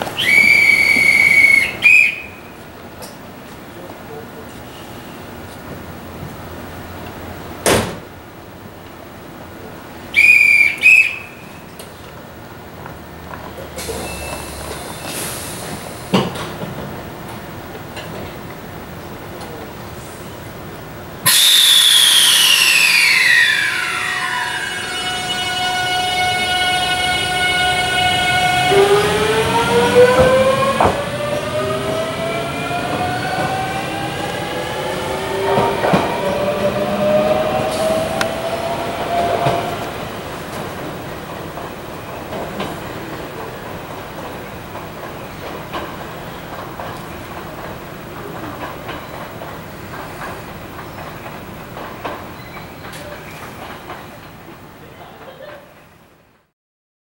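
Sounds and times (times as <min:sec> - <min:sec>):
hand whistle blasts: 0:00.2 - 0:02.4, 0:10.2 - 0:11.5, 0:21.3 - 0:28.6
electric train motor whine: 0:21.3 - 0:40.0.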